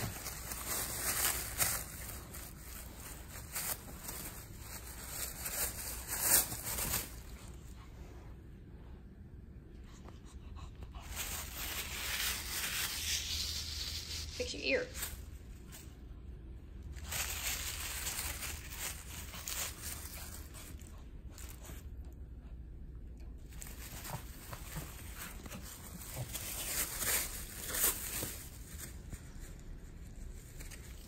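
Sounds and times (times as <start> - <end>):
dog tearing thin paper: 0.0 - 7.6, 11.0 - 15.8, 16.9 - 21.8, 23.5 - 29.4.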